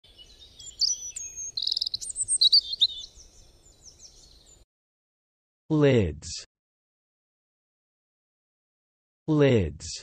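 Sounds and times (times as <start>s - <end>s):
songbirds chirping: 0.0s - 4.6s.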